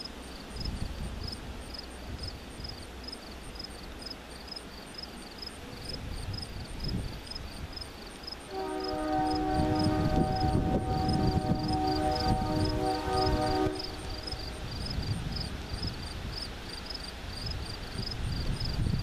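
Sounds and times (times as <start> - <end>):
crickets chirping: 0.0 - 19.0
locomotive air horn blast: 8.5 - 14.8.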